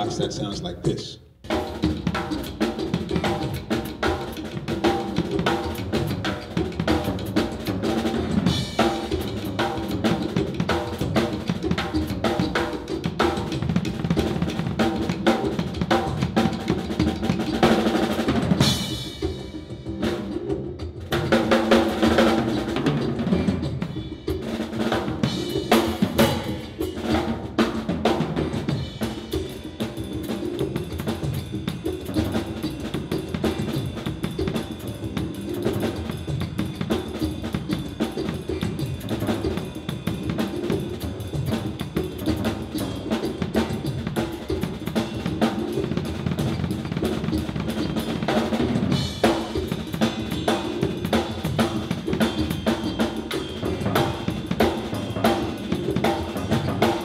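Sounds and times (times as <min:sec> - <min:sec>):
drum kit played with sticks: 0:00.0 - 0:57.0.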